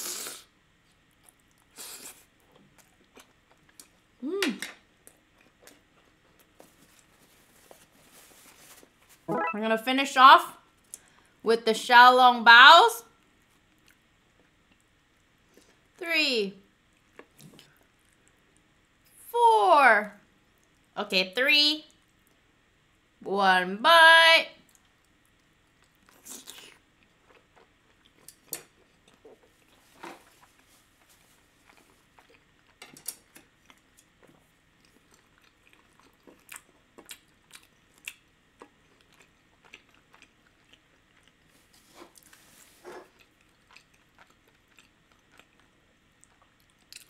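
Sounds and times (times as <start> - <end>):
chewing and mouth clicks: 1.1 - 4.0, 24.7 - 29.8, 31.6 - 47.0.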